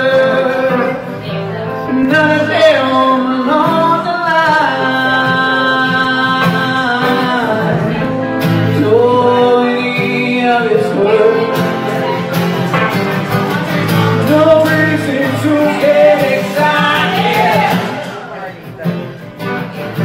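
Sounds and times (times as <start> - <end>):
man singing: 0.0 - 19.2
electric guitar: 0.0 - 20.0
strummed acoustic guitar: 0.0 - 20.0.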